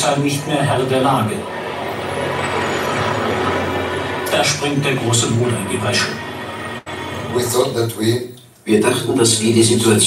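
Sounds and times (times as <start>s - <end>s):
noisy soundtrack wash over loudspeakers: 0.0s - 8.2s
narration: 0.0s - 10.0s
music: 1.5s - 7.9s.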